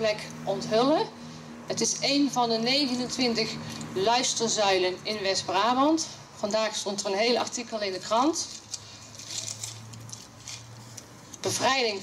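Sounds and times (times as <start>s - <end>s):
low electrical hum: 0.0s - 12.0s
newspaper rustling: 7.5s - 12.0s.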